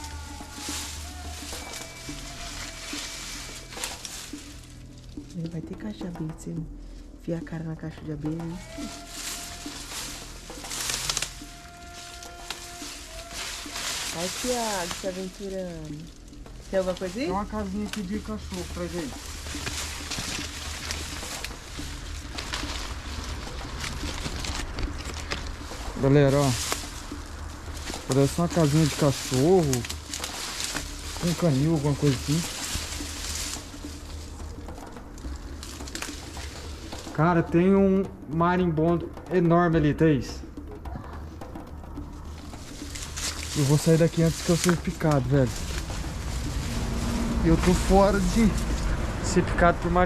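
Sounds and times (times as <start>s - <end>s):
brush rustling and crackling: 0.0s - 39.2s, 40.4s - 50.0s
steady low rumble: 0.0s - 50.0s
bird cooing: 40.6s - 43.2s.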